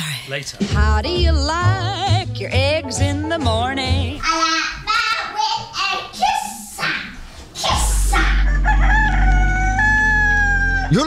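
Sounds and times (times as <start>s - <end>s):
rooster crowing: 8.2s - 11.0s.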